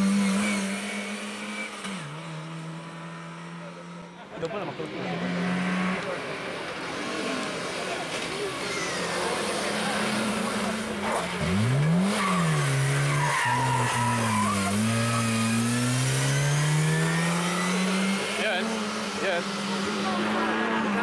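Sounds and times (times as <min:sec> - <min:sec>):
rally car engine revving: 0:00.0 - 0:21.0
tyre squeal: 0:12.1 - 0:15.7.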